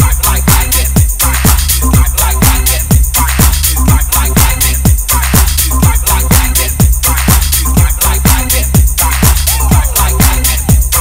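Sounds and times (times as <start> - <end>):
bassline: 0.0 - 11.0
hi-hats: 0.0 - 11.0
house music: 0.0 - 11.0
kick drum: 0.0 - 11.0.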